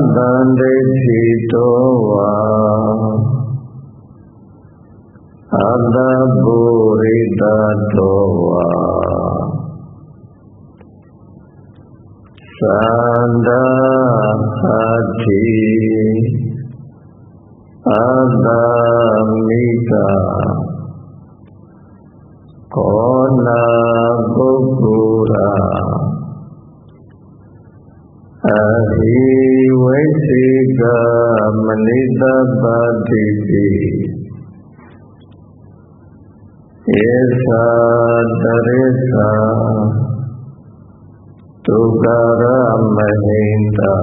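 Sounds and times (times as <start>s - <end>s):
man chanting: 0.0s - 4.2s, 5.4s - 10.1s, 12.4s - 17.0s, 17.8s - 21.2s, 22.7s - 26.6s, 28.3s - 35.0s, 36.8s - 40.7s, 41.6s - 44.0s.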